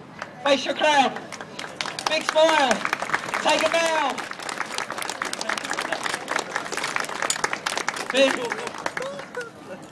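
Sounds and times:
audience applauding: 0:01.2 - 0:09.6.

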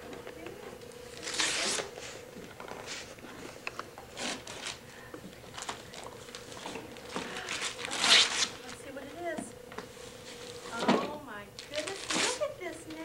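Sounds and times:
wrapping paper tearing: 0:00.8 - 0:02.2, 0:04.1 - 0:04.8, 0:05.4 - 0:08.9, 0:11.6 - 0:13.0.

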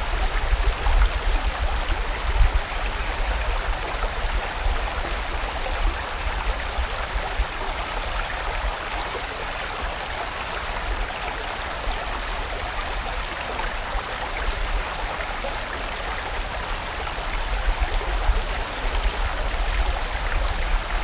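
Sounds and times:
mountain stream running: 0:00.0 - 0:21.0.

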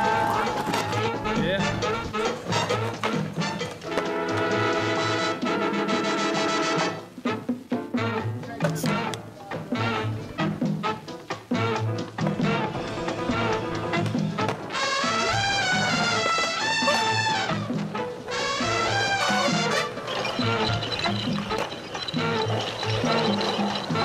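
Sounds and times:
pitched melody line: 0:18.8 - 0:24.0.

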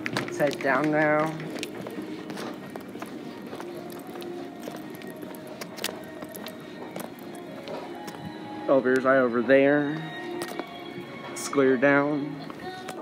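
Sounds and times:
faint background music: 0:00.0 - 0:13.0
footsteps on tile floor: 0:00.0 - 0:13.0.

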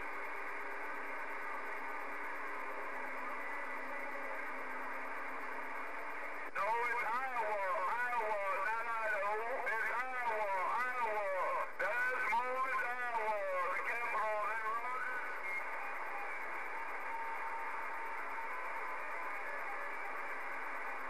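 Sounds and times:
radio static hiss: 0:00.0 - 0:21.0
voice over radio: 0:06.5 - 0:15.7.

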